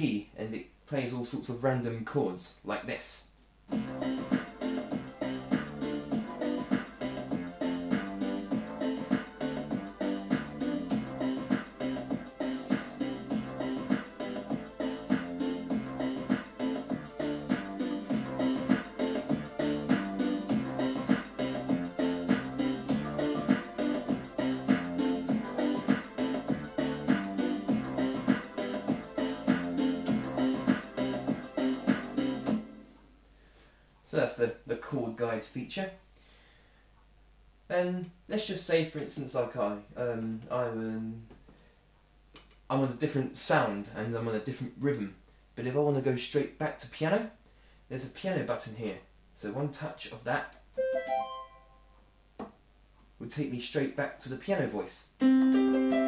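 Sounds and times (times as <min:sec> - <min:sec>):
keyboard chord accompaniment with beat: 0:03.7 - 0:32.7, 0:50.8 - 0:51.8, 0:55.2 - 0:56.0.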